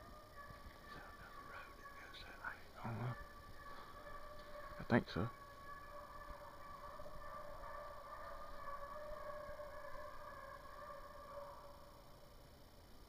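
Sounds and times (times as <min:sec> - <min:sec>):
hounds baying: 0:00.0 - 0:12.0.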